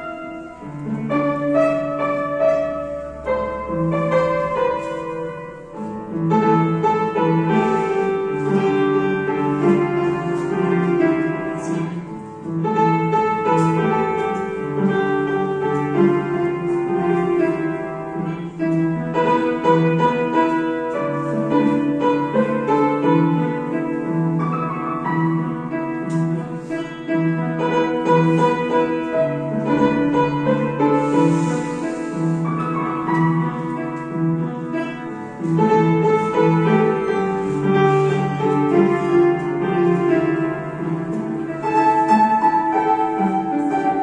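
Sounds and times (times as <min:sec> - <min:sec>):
upright piano playing a melody: 0:00.0 - 0:44.0.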